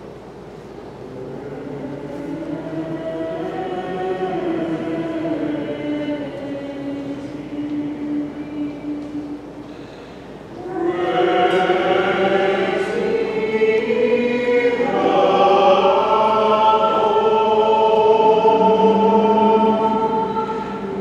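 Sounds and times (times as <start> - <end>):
choir chanting: 1.1 - 9.4, 10.6 - 21.0.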